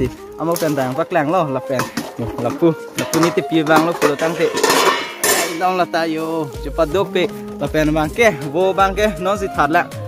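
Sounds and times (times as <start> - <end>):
ladle and pan clattering: 1.7 - 6.0.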